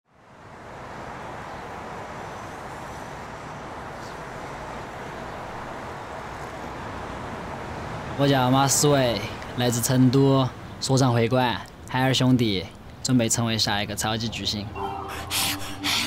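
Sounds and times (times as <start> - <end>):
distant road traffic hum: 0.1 - 16.0.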